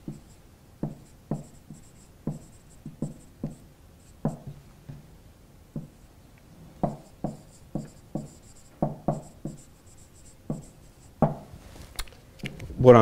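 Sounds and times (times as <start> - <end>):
marker writing on whiteboard: 0.0 - 4.6, 5.8 - 6.0, 6.8 - 11.4
marker tip squeaks: 1.0 - 4.3, 7.0 - 11.2.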